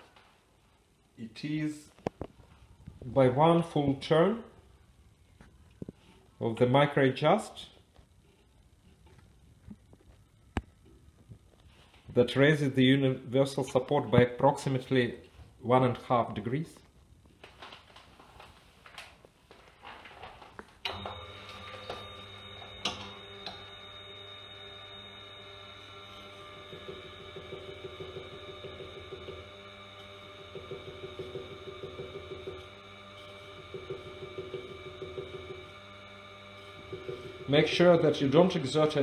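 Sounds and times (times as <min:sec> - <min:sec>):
sharpening machine motor humming: 0:21.0 - 0:39.0.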